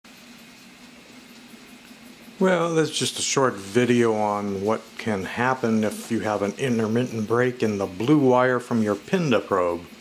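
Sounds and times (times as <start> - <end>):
cooling fan whirring: 0.1 - 10.0
low hum: 0.1 - 10.0.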